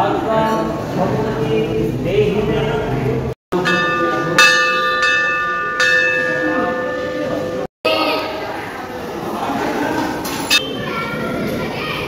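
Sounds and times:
large brass bell ringing: 3.6s - 8.5s.

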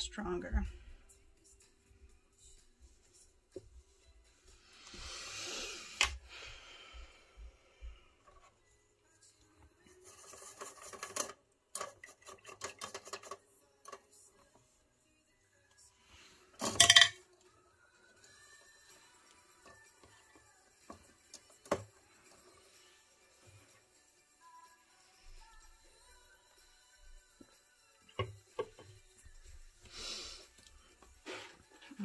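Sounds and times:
faint background music: 0.0s - 32.0s
small tools clinking on tabletop: 16.6s - 17.2s.

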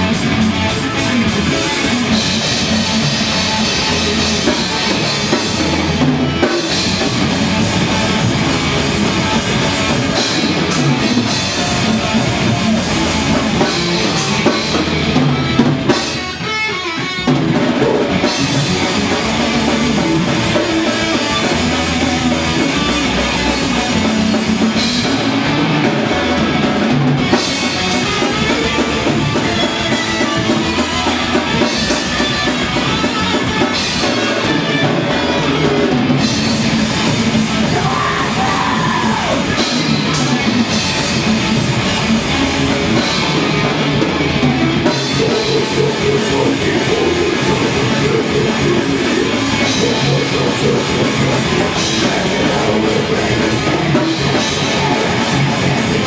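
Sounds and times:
heavy metal band playing live: 0.0s - 56.0s.

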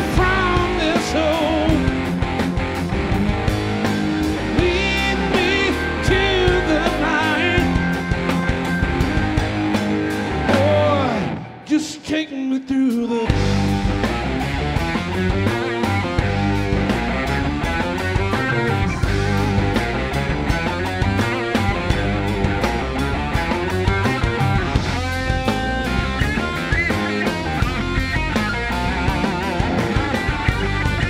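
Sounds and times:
lead guitar with wide vibrato: 0.0s - 11.8s, 13.3s - 31.0s
live rock band playing: 0.0s - 31.0s.

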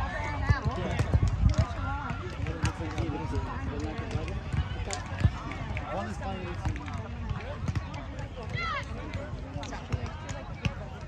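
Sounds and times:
people chattering: 0.0s - 11.0s.

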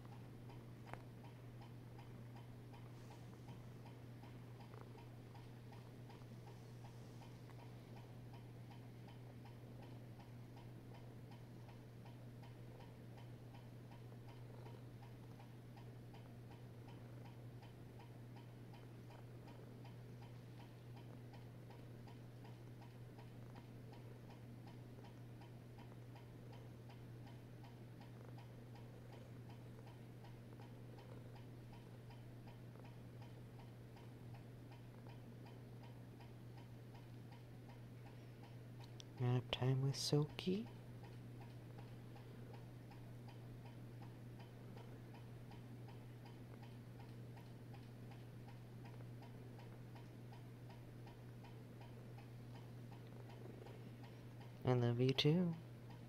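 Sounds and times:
faint regular ticking: 0.0s - 56.0s
steady low hum: 0.0s - 56.0s.

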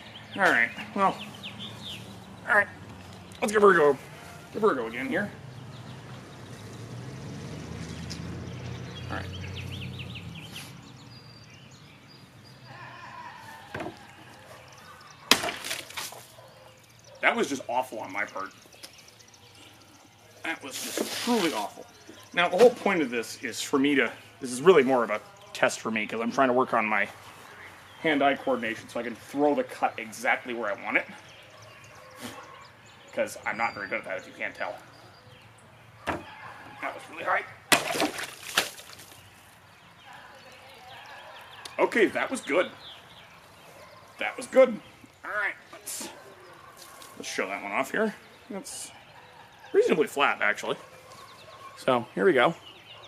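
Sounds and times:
blade slicing plastic jug: 15.3s - 16.2s, 37.7s - 39.2s.

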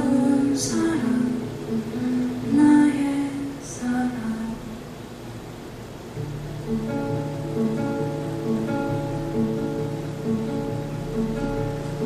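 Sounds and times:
fingerpicked classical guitar: 0.0s - 4.3s, 6.1s - 12.0s.

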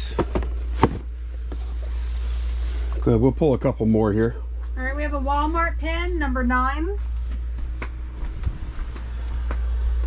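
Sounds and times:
boxed items knocking: 0.0s - 1.1s
steady low hum: 0.0s - 10.0s.

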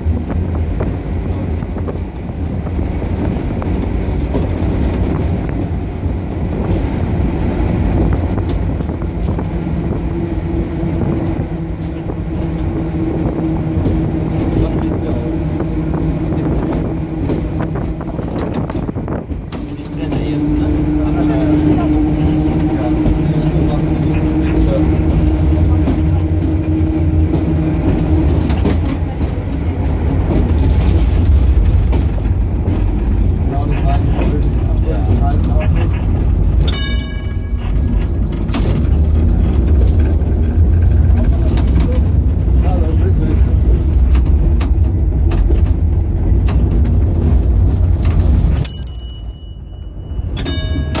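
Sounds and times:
tram wheels rumbling on rails: 0.0s - 51.0s
wheels clicking over rail joints: 16.0s - 51.0s.

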